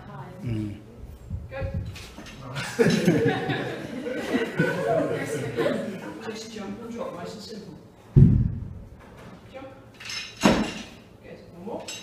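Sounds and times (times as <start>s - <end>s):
barbell thud and metallic clank: 10.4s - 10.9s.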